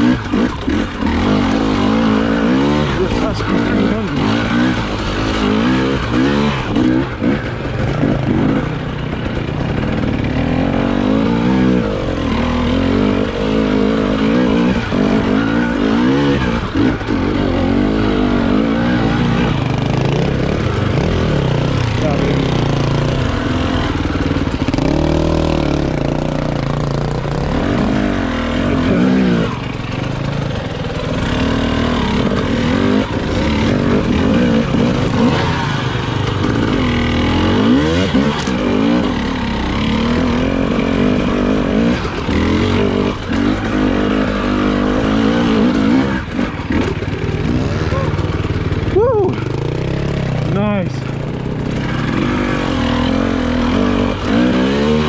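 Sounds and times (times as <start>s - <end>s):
motorcycle engine revving: 0.0s - 55.0s.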